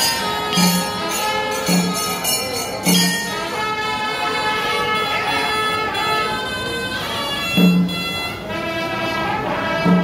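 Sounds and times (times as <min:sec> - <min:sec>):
brass horns blowing long notes: 0:03.4 - 0:10.0.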